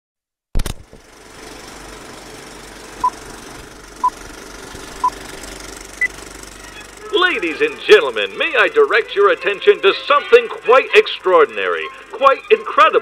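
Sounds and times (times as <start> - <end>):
film projector rattling: 0.6 - 13.0
film projector starting click: 0.6 - 13.0.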